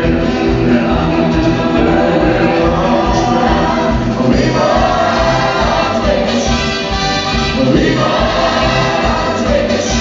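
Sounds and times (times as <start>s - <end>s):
choir-like backing vocals: 0.0s - 10.0s
live band playing: 0.0s - 10.0s
steady drum beat: 0.0s - 10.0s.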